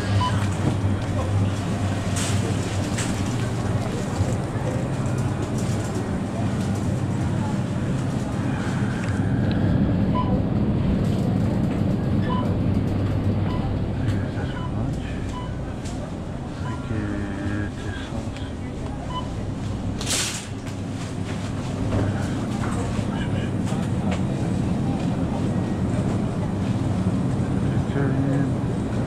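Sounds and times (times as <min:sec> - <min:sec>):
murmur of shoppers' voices: 0:00.0 - 0:29.0
refrigerated display cases humming: 0:00.0 - 0:29.0
short faint beeps: 0:00.1 - 0:00.4, 0:14.4 - 0:15.6, 0:16.6 - 0:16.9.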